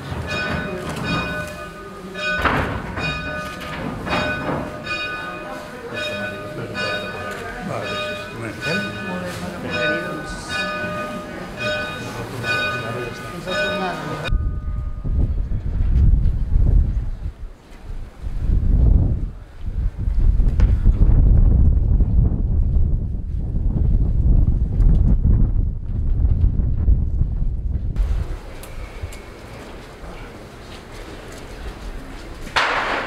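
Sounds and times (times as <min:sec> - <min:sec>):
outdoor background noise: 0:00.0 - 0:33.0
wind buffeting microphone: 0:14.2 - 0:29.5.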